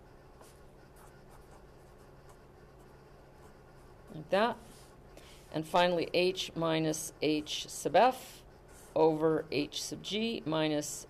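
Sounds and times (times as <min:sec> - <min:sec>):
low room hum: 0:00.0 - 0:11.0
pen scratching on paper: 0:00.3 - 0:05.0, 0:08.6 - 0:09.3.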